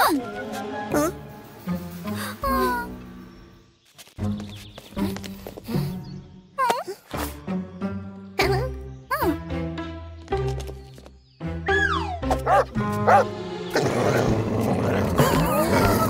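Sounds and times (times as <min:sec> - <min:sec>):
cartoon background music: 0:00.0 - 0:16.0
cartoon dog barking and growling: 0:12.2 - 0:16.0.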